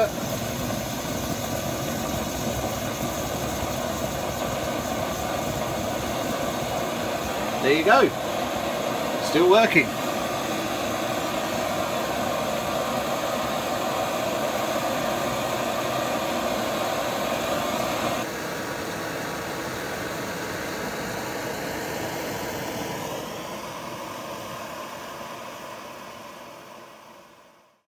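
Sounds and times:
pressure stove burner hissing: 0.0 - 27.8.

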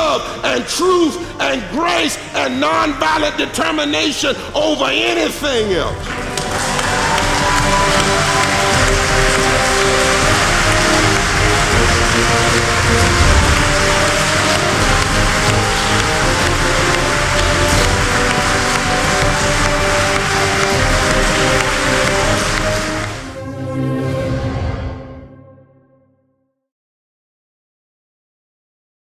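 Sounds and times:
music with sustained chords: 5.5 - 26.0
congregation applauding and cheering: 5.8 - 25.0.

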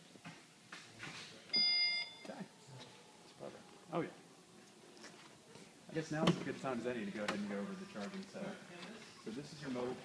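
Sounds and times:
liftgate electronic beep: 1.5 - 2.3.

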